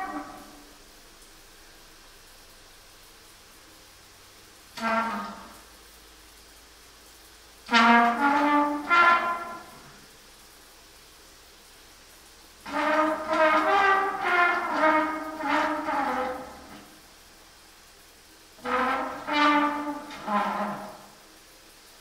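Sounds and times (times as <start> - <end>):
trumpet playing: 0.0 - 0.8, 4.8 - 5.7, 7.7 - 10.1, 12.6 - 17.0, 18.6 - 21.3.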